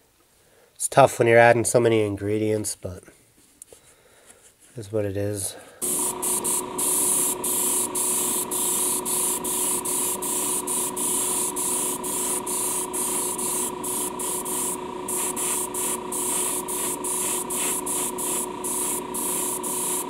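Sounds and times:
airbrush hissing: 0:05.8 - 0:20.0
steady hum: 0:05.8 - 0:20.0.

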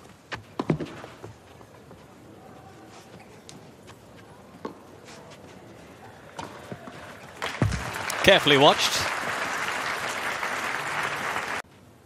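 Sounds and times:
crowd applause: 0:07.4 - 0:11.6.

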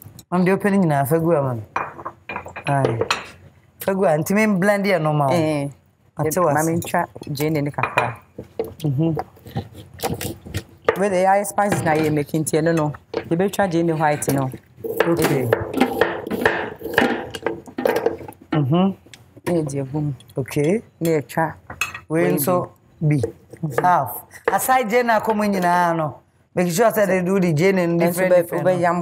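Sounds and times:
woman's voice: 0:03.8 - 0:08.2, 0:22.1 - 0:29.0
knife chopping on wooden board: 0:14.9 - 0:17.4.

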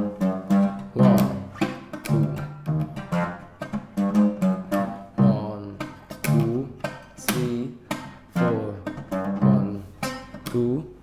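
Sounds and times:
oud plucked notes: 0:00.0 - 0:11.0.

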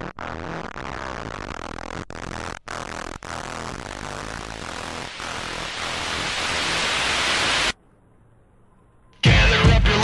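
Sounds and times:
music: 0:00.0 - 0:05.0, 0:09.2 - 0:10.0
white-noise riser hiss: 0:00.0 - 0:07.8.

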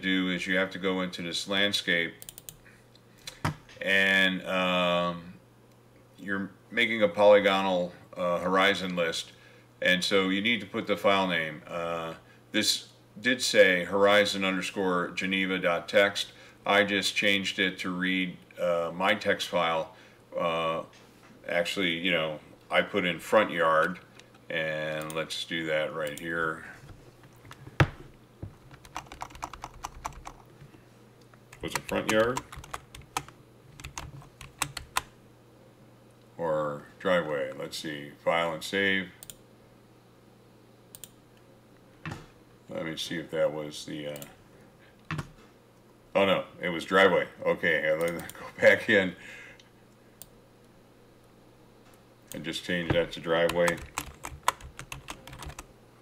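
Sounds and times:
keyboard keys clicking: 0:28.7 - 0:30.4, 0:31.5 - 0:35.1, 0:53.4 - 0:55.7.

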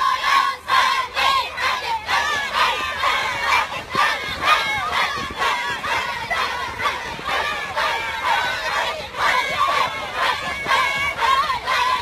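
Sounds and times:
children shouting a rhythmic chant: 0:00.0 - 0:12.0.

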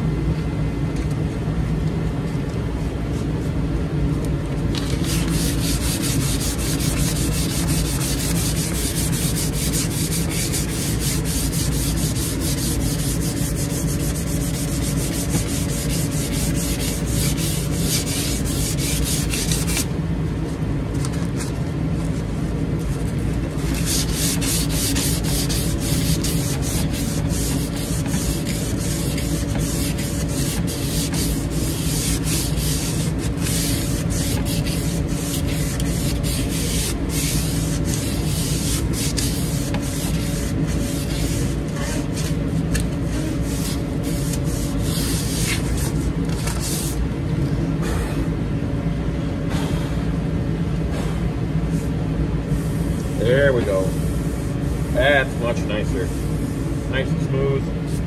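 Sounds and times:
sandpaper rasping on wood: 0:04.8 - 0:19.9, 0:23.6 - 0:42.5, 0:43.1 - 0:47.0.

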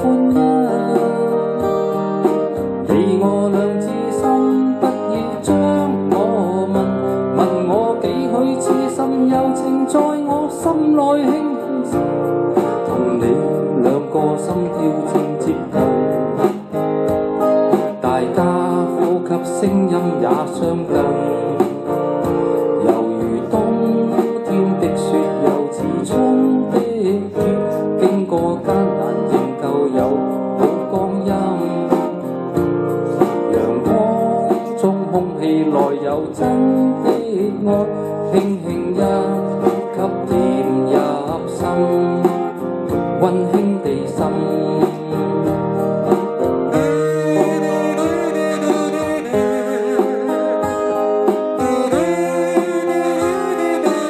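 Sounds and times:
guitar-led pop ballad: 0:00.0 - 0:54.0
wavering melody line: 0:46.7 - 0:54.0.

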